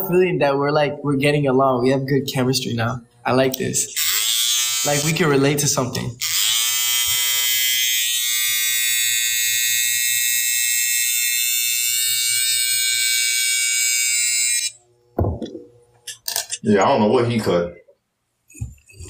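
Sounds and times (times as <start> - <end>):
electric hair trimmer whining: 3.8 - 14.9.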